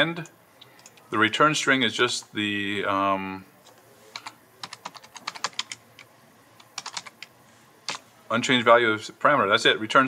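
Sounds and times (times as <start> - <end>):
typing on computer keyboard: 4.1 - 7.3.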